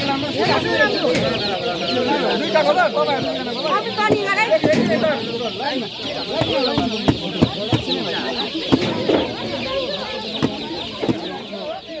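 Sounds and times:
chicks peeping: 0.0 - 12.0
people's voices: 0.0 - 12.0
knocks from boxes: 4.0 - 11.6.

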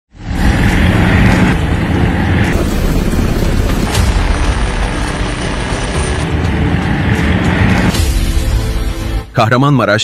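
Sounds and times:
helicopter engine and rotor noise: 0.2 - 8.0.

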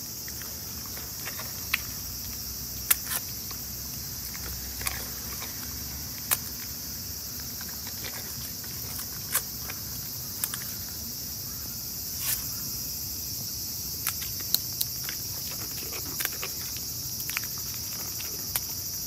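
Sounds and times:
high-pitched insect chorus: 0.0 - 19.0.

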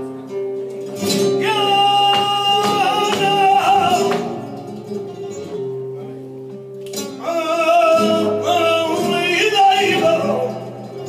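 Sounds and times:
flamenco guitar: 0.0 - 11.0
person singing: 1.2 - 4.7, 7.2 - 11.0.

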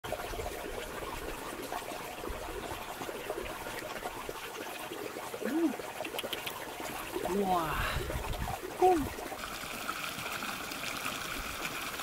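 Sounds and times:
trickle of water: 0.1 - 12.0.

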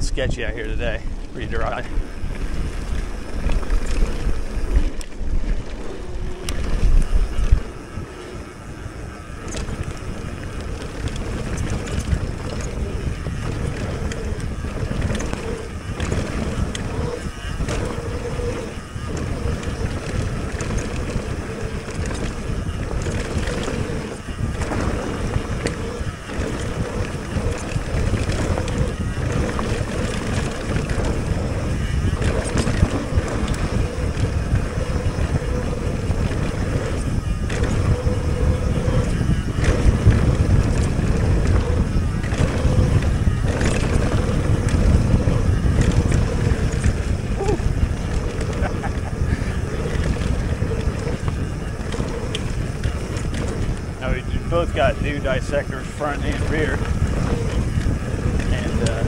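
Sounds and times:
bike rattling and knocking: 0.0 - 59.0
tyres rolling over dirt: 0.0 - 59.0
wind rumbling on microphone: 0.0 - 59.0.

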